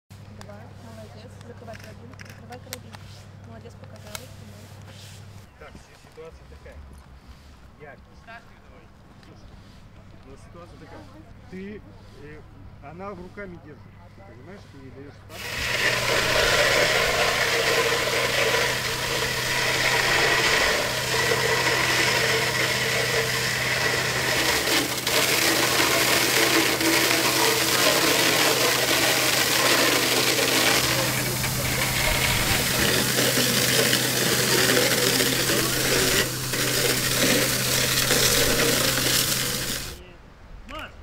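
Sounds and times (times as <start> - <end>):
pump engine humming: 15.3 - 40.0
water jet spraying: 15.3 - 40.0.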